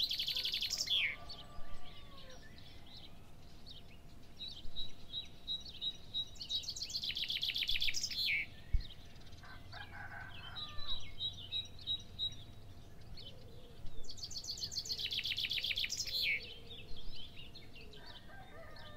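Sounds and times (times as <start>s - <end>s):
birds chirping: 0.0s - 18.9s.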